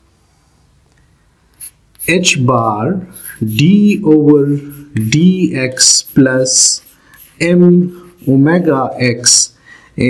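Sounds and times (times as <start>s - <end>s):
chalk scratching on blackboard: 1.6s - 2.3s, 3.0s - 9.5s.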